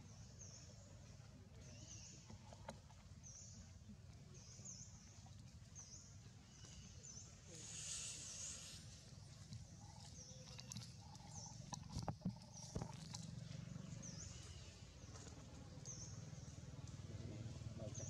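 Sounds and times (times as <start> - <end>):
low steady rumble: 8.6 - 18.0.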